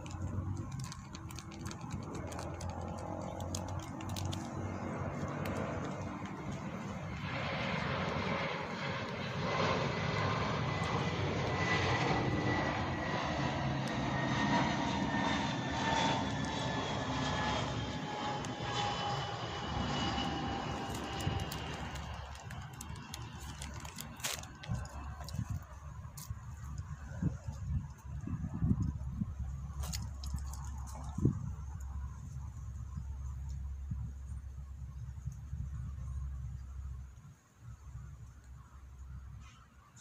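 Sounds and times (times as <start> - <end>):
jet airliner flying past: 0.0 - 40.0
jet engine whine falling in pitch: 1.6 - 26.0.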